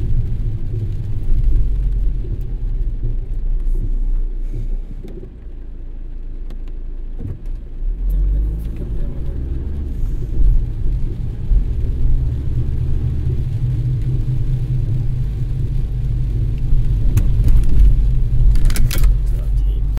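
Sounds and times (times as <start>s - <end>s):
car engine and road rumble: 0.0s - 19.9s.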